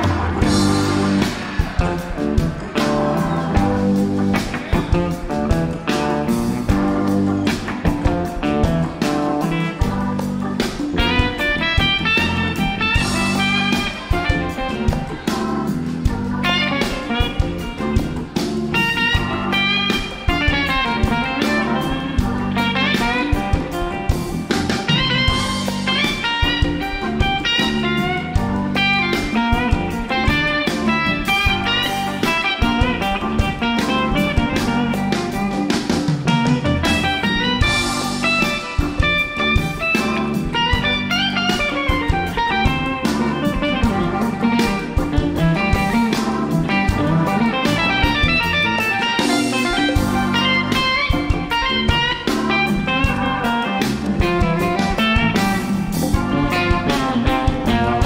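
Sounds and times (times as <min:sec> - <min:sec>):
drum kit beat: 0:00.0 - 0:58.0
electric bass: 0:00.0 - 0:58.0
electric guitar: 0:00.0 - 0:58.0.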